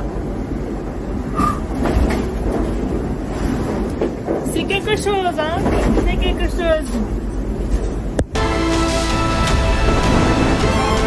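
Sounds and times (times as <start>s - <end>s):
hull rushing through sea: 8.9s - 11.0s.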